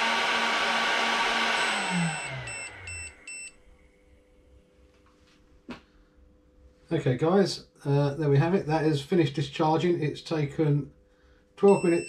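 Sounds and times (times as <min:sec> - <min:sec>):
high electronic tone: 0:01.6 - 0:03.6, 0:11.6 - 0:12.0
short beeps: 0:02.1 - 0:03.6, 0:11.6 - 0:12.0.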